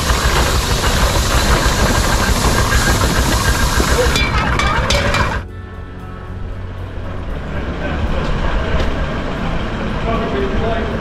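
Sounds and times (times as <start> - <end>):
road vehicle rumble: 0.0 - 11.0.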